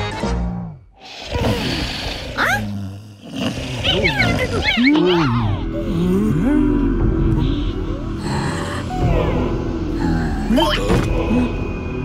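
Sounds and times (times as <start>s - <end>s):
grunting vocal noises: 1.0s - 11.6s.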